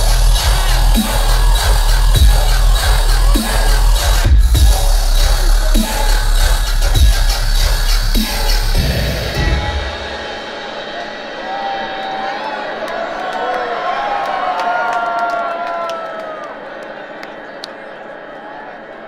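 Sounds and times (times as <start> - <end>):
crowd cheering and whooping: 0.0 - 7.0, 8.7 - 19.0
dubstep music with heavy bass: 0.0 - 12.2
people clapping: 12.8 - 18.0.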